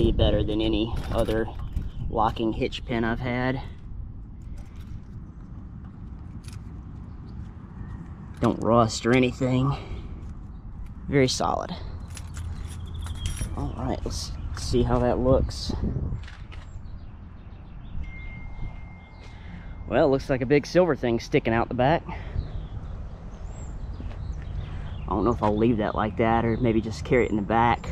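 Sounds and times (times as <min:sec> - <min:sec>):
wind rumble: 0:00.0 - 0:26.4
steady high ringing tone: 0:18.0 - 0:21.2.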